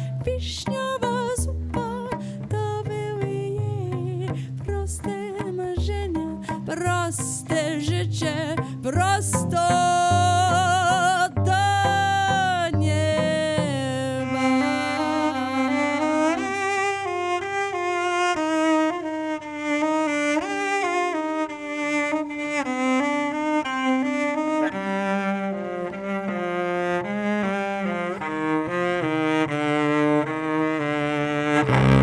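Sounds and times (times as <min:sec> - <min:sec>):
woman singing with vibrato: 0:00.0 - 0:16.5
bowed cello melody: 0:00.0 - 0:32.0.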